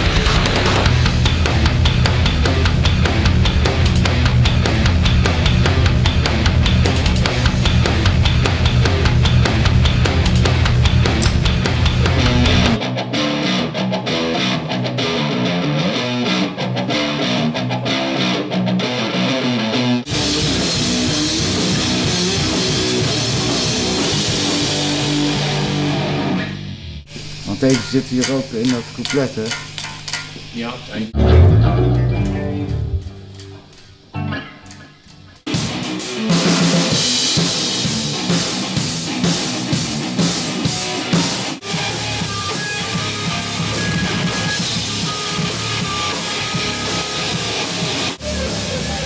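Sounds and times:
heavy rock music: 0.0s - 27.1s, 31.1s - 49.0s.

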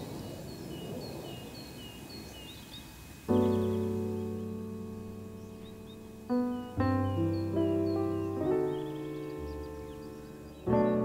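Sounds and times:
birds chirping: 0.0s - 11.0s
faint outdoor background noise: 0.0s - 11.0s
piano chord ringing: 3.3s - 11.0s.

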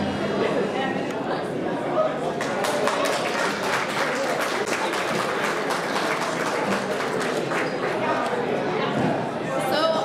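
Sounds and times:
audience applauding: 2.3s - 8.5s.

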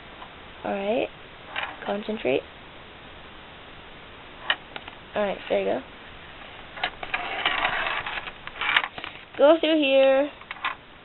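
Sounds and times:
plastic sphere scraping and rustling: 6.3s - 9.4s.

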